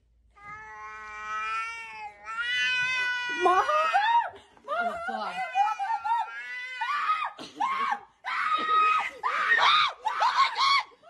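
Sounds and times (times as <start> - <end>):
cat yowling: 0.4 - 4.2.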